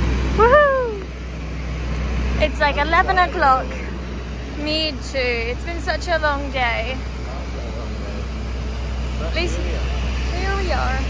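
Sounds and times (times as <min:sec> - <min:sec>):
constant low hum: 0:00.0 - 0:11.0.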